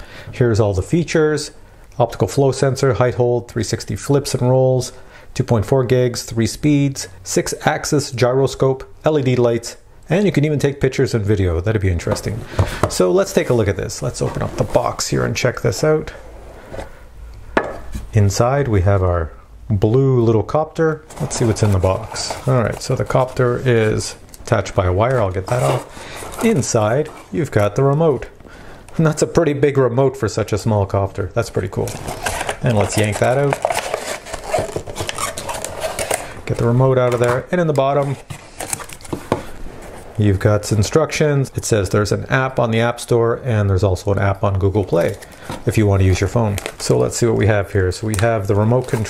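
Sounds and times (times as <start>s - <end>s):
cardboard rubbing and sliding: 13.3s - 15.0s, 21.0s - 24.1s, 24.9s - 27.6s, 31.8s - 40.3s
paper scraping and tapping: 31.8s - 40.0s.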